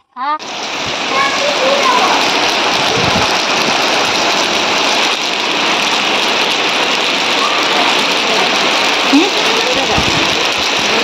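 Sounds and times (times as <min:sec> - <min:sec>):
rain pattering on concrete: 0:00.4 - 0:11.0.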